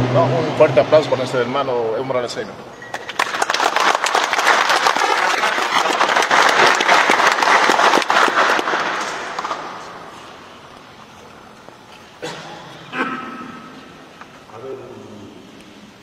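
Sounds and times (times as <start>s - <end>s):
audience applause: 2.9s - 9.8s.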